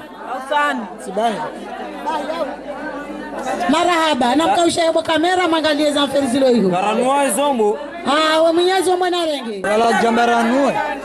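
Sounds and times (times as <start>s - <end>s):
overlapping voices chatter: 0.0s - 11.0s.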